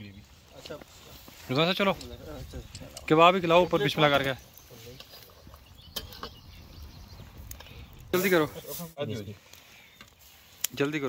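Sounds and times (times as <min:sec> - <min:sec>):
campfire crackling: 0:00.0 - 0:11.0
fire pops: 0:00.6 - 0:11.0.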